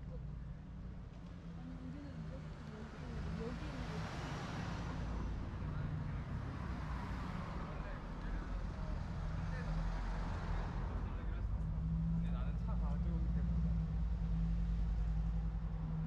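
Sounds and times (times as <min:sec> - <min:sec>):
faint people's voices: 0:00.0 - 0:16.0
road traffic going by: 0:00.0 - 0:16.0.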